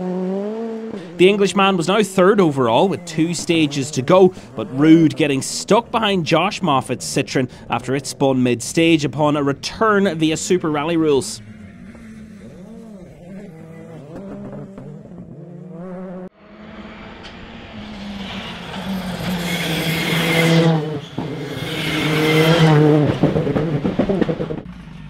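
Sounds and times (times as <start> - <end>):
distant car through corner: 0.0 - 25.0
rally car engine at full throttle: 0.0 - 25.0.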